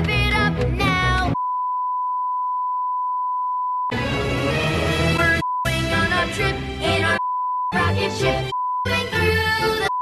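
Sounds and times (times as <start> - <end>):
censor bleep: 1.4 - 3.9
upbeat theme music: 3.9 - 9.9.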